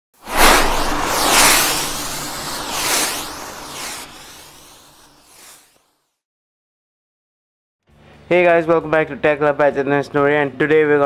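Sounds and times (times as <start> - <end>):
whoosh: 0.2 - 5.8.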